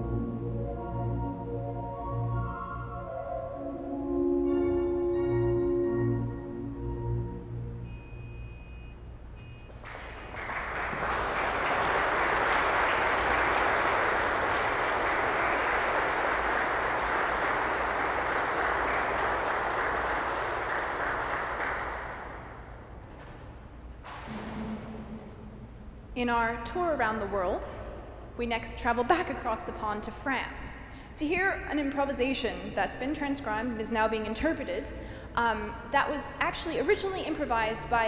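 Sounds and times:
organ tones: 0.0s - 13.8s
audience applauding in echoing hall: 9.7s - 22.6s.

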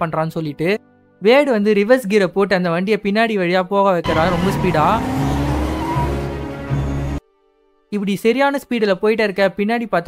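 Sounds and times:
car engine revving: 4.1s - 7.2s
tyres squealing: 4.1s - 7.2s.

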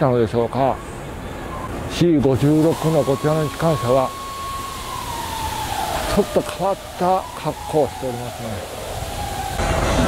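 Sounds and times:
siren wailing: 2.4s - 10.0s.

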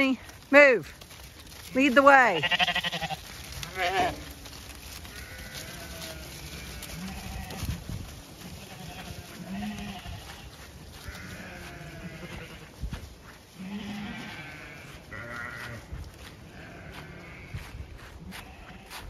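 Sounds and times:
sheep bleating: 2.2s - 4.4s, 5.0s - 7.8s, 8.4s - 12.7s, 13.6s - 15.9s, 16.5s - 19.0s.

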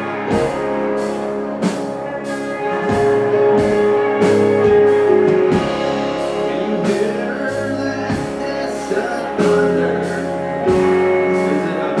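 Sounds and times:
drum kit beat: 0.0s - 12.0s
electric guitars: 0.0s - 12.0s.

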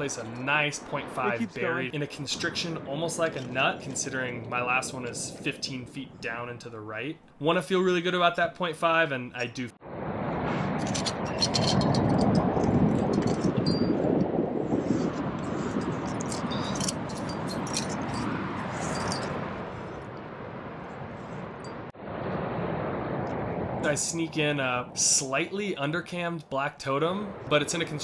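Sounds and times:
steady rushing noise: 0.0s - 6.9s, 9.8s - 28.0s
climbing gear clinking: 15.8s - 19.4s.

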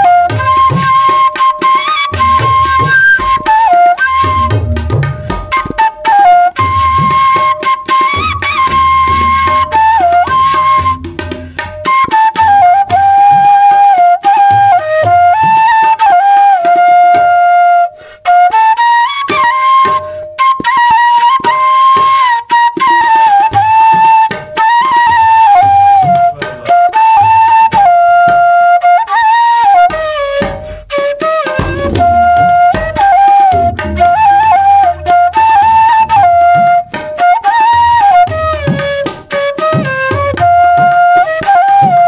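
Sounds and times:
bamboo flute melody: 0.0s - 42.0s
tabla drums: 0.0s - 42.0s.

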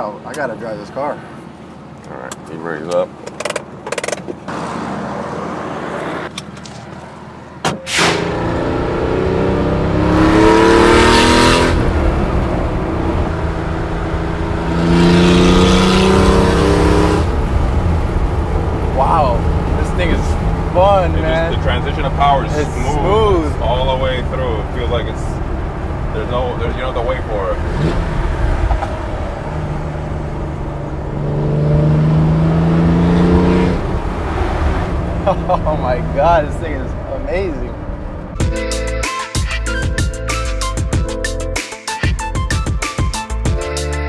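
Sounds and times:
car engine revving: 7.9s - 39.0s.

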